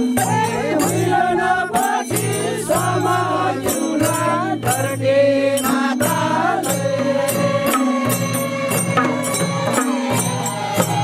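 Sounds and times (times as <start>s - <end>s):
voices chanting a folk song: 0.0s - 11.0s
barrel drums beating: 6.1s - 11.0s.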